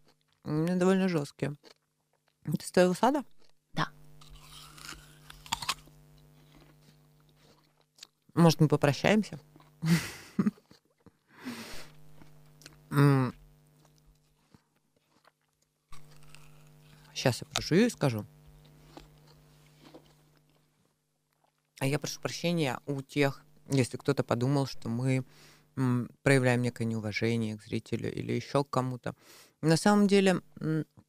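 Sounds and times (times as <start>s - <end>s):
chewing: 1.6s - 2.4s, 3.3s - 8.3s, 9.4s - 9.8s, 10.5s - 17.7s, 18.5s - 20.7s, 21.3s - 21.8s
low steady hum: 2.2s - 29.1s
apple bite crunches: 3.3s - 8.2s, 13.8s - 20.7s.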